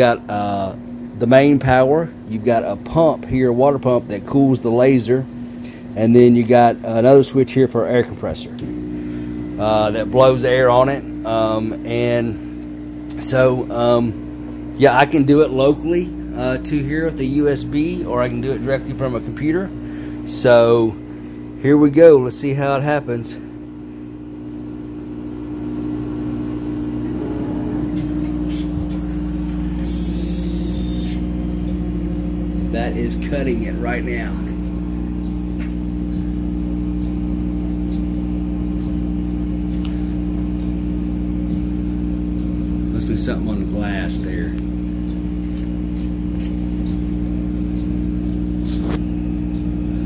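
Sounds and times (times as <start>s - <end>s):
laser engraver humming: 8.2s - 50.0s
laser head ticks: 28.0s - 50.0s.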